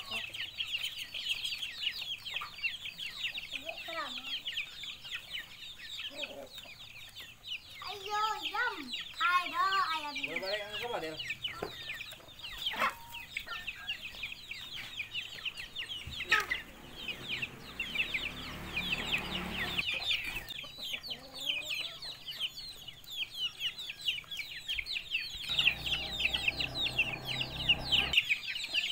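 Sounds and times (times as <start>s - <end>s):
chicks cheeping: 0.0s - 28.9s
hens clucking: 0.0s - 28.9s.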